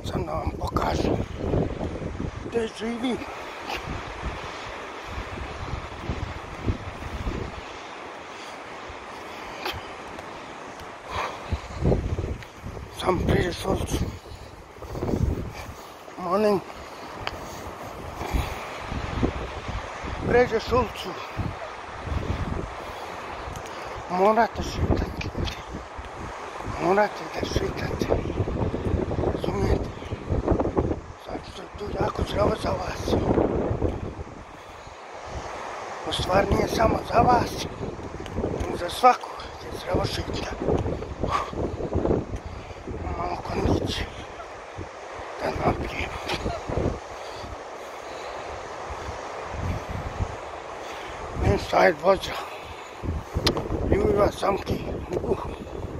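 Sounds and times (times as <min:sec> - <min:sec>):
surf breaking on beach: 0:00.0 - 0:55.9
wind buffeting microphone: 0:00.0 - 0:55.9
wind hiss: 0:00.0 - 0:55.9.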